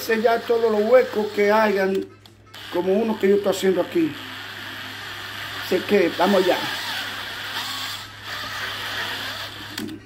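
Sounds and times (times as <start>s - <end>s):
electric drill stirring cement: 0.0s - 1.8s, 2.5s - 10.0s.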